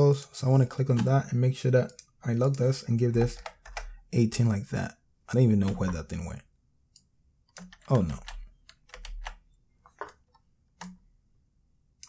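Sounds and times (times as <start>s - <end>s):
computer keyboard keystrokes: 1.9s - 4.0s, 5.6s - 6.0s, 7.0s - 9.4s.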